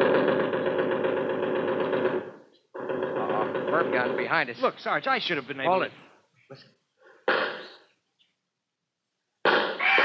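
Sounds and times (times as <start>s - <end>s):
gunshot: 7.3s - 7.7s, 9.4s - 10.0s.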